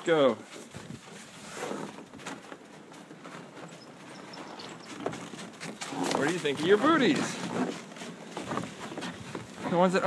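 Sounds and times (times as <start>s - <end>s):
footsteps crunching on wooden deck: 0.0s - 10.0s.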